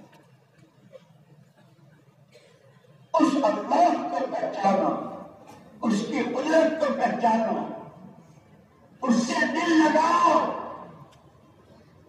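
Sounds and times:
man speaking over loudspeaker: 3.1s - 8.2s, 9.0s - 11.1s.

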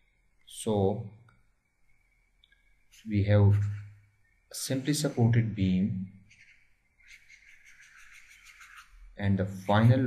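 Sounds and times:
stylus scratching on tablet: 2.9s - 3.9s, 6.3s - 10.0s.

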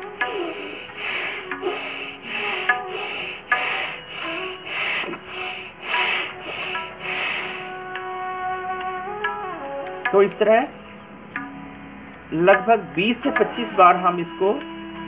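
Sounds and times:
forceful breaths through nose: 0.0s - 7.9s
soft instrumental music: 0.0s - 15.0s.

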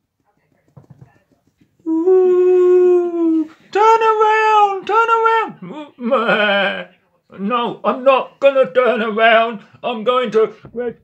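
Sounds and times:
person wailing: 1.9s - 6.9s.

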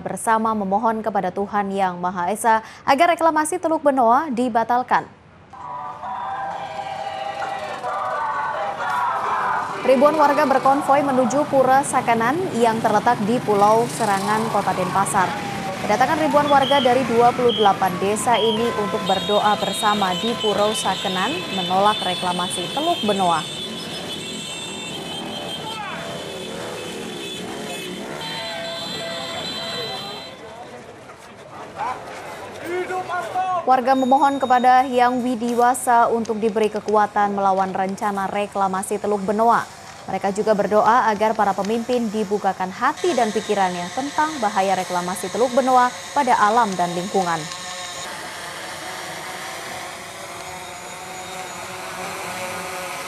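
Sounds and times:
people's voices: 5.5s - 23.5s
motor scooter engines passing: 5.6s - 53.0s
hiss-like outdoor rush: 39.0s - 40.1s.

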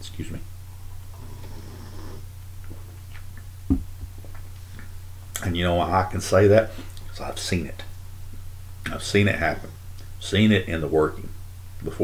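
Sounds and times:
steady low hum: 0.0s - 12.0s
breathing: 6.7s - 7.0s.

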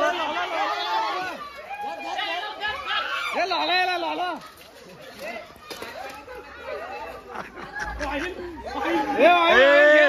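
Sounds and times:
young men calling and chattering: 0.0s - 10.0s.

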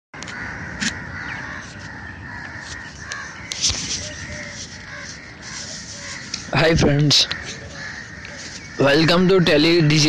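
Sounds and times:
birds calling: 0.2s - 10.0s
steady background noise: 0.2s - 10.0s.

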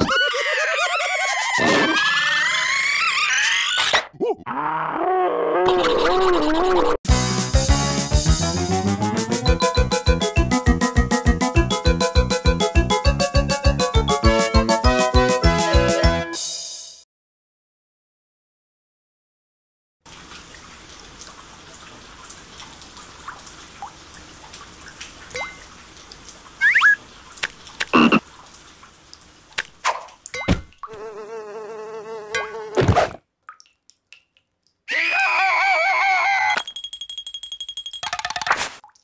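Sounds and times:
warbling cartoon creature voices: 0.0s - 7.0s, 26.6s - 27.0s, 34.9s - 36.6s.

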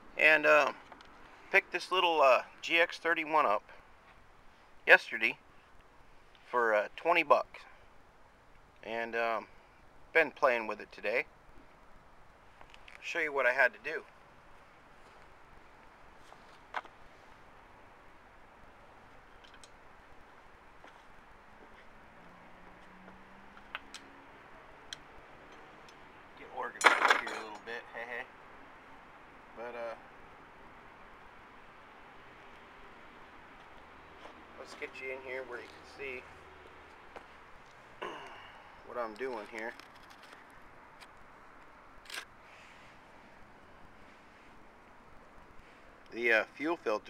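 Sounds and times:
faint background hiss: 0.0s - 47.0s.

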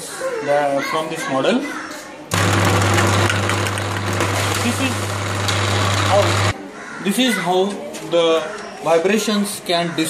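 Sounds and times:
massage machine humming: 2.3s - 6.5s.

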